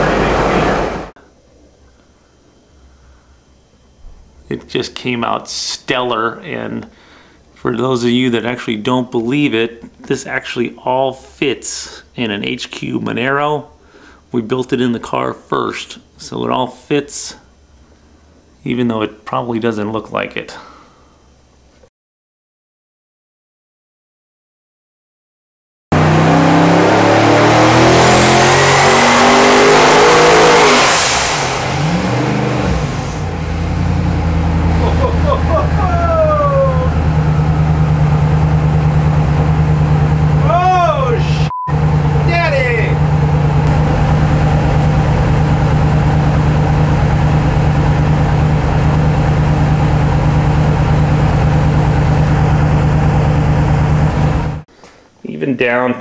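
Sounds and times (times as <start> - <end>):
engine revving on a dyno: 0.0 - 1.1, 25.9 - 35.6, 36.8 - 40.6, 41.7 - 54.6.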